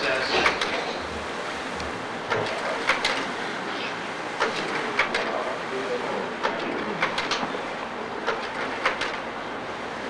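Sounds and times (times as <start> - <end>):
slide projector hum and hiss: 0.0 - 10.0
slide projector clicks: 2.3 - 3.3, 6.4 - 7.5, 8.2 - 9.3.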